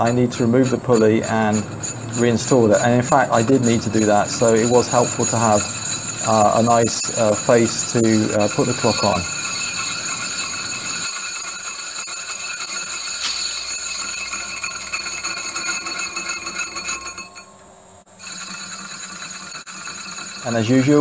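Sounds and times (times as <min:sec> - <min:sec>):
metal lathe whine: 0:00.0 - 0:21.0
light metallic ringing: 0:00.6 - 0:21.0.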